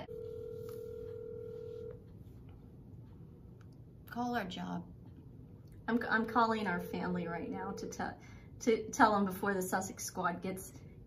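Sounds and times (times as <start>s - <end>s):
telephone tone: 0.0s - 2.0s.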